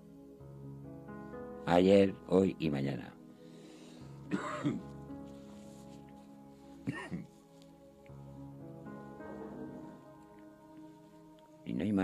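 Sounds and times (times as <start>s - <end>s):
soft background music: 0.0s - 12.0s
man clearing his throat: 4.3s - 4.9s, 6.9s - 7.3s.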